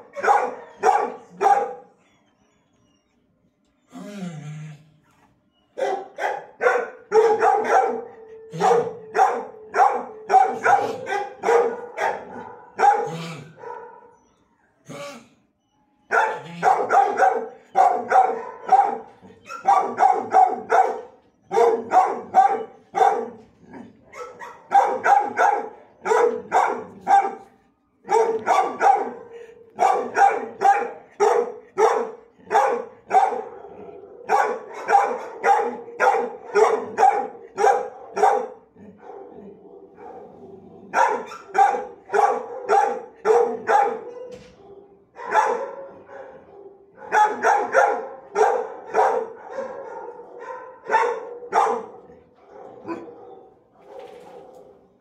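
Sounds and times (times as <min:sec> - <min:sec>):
dog barking: 0:00.0 - 0:02.0, 0:05.8 - 0:14.2, 0:16.1 - 0:55.0.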